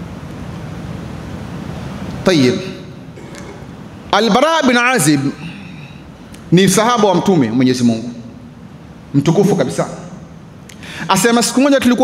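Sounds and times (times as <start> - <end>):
faint hiss: 0.0 - 12.0.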